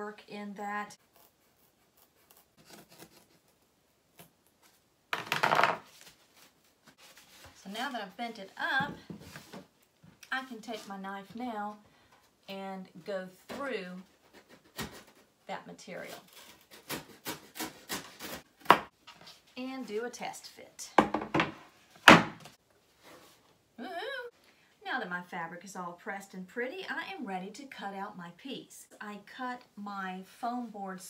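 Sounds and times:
knife scraping foam board: 1.0s - 4.3s, 16.0s - 18.5s.

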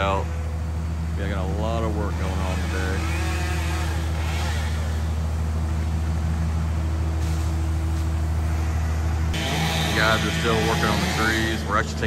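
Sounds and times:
heavy engine humming: 0.0s - 12.0s.

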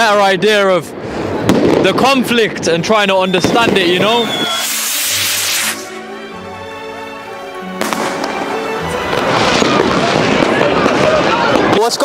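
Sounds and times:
fireworks crackling and popping: 1.3s - 6.0s, 7.8s - 12.0s
firework bang: 1.4s - 2.2s, 3.2s - 6.0s, 7.8s - 11.9s
background music: 3.5s - 11.8s.

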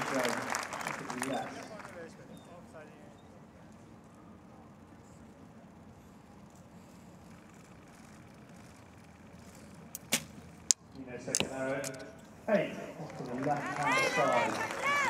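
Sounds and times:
voices: 0.0s - 8.4s, 11.0s - 15.0s
arrow striking target: 10.0s - 10.4s.

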